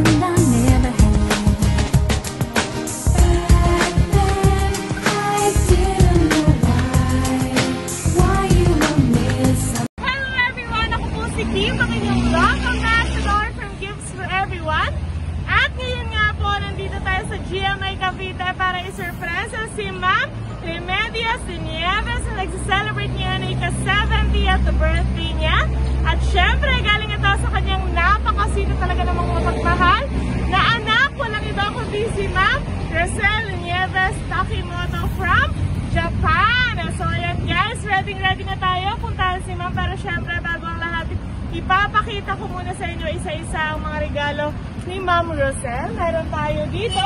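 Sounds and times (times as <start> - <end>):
street traffic rumble: 0.0 - 47.0
woman talking: 10.0 - 47.0.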